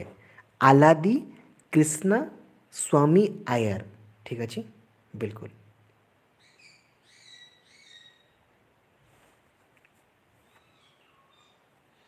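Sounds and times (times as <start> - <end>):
faint whistled bird calls: 6.4 - 8.4, 10.4 - 12.0.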